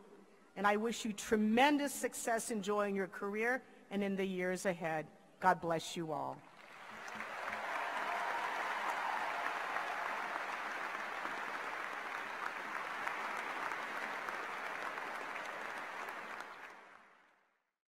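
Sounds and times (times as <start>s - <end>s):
large audience applauding: 6.6s - 17.4s.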